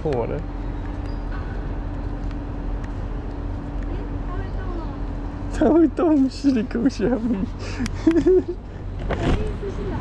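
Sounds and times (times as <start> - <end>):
constant low hum: 0.0 - 10.0
outdoor rumble and hiss: 0.0 - 10.0.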